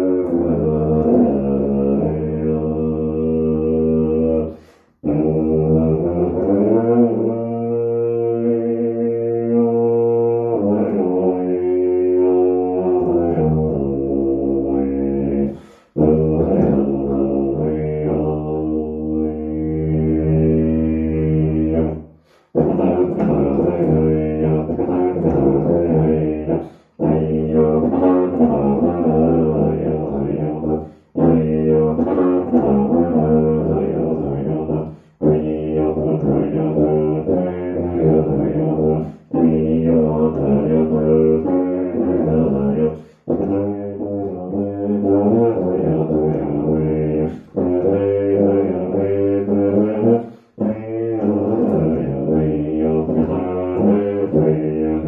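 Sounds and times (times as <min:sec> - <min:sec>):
tuba low note: 0:00.0 - 0:55.0
quick breath: 0:04.5 - 0:05.0, 0:15.5 - 0:16.0, 0:22.0 - 0:22.6, 0:26.6 - 0:27.0, 0:30.8 - 0:31.2, 0:34.9 - 0:35.2, 0:42.9 - 0:43.3, 0:50.2 - 0:50.6.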